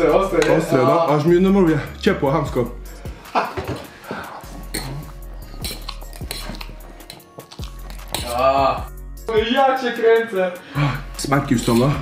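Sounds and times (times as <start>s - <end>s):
background music with beat: 0.0s - 12.0s
fork scraping metal tray: 4.7s - 8.4s, 11.5s - 12.0s.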